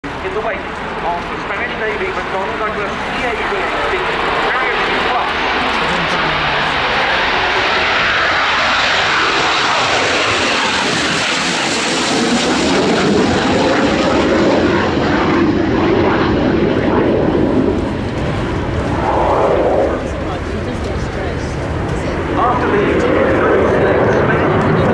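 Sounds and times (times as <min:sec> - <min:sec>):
jet engine roaring: 0:00.0 - 0:24.9.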